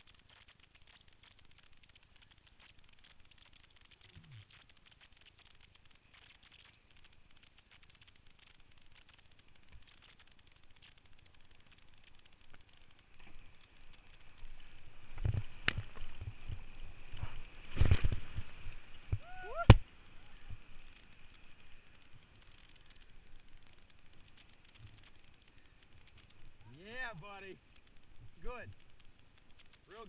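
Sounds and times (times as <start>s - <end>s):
water rushing and splashing: 13.0s - 30.0s.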